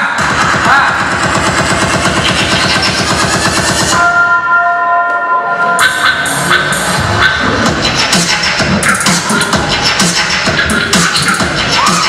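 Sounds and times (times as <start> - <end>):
loud electronic dance music: 0.0 - 12.0
held synth chord: 3.9 - 7.6.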